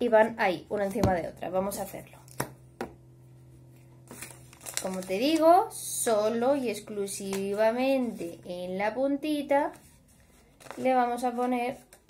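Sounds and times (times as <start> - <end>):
paper rustling: 4.1 - 5.5, 9.7 - 12.0.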